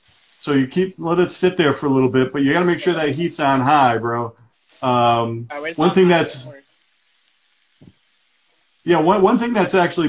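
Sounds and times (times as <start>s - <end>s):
beef sizzling in a skillet: 0.0s - 3.9s, 4.5s - 10.0s
person speaking: 0.4s - 6.6s, 8.9s - 10.0s.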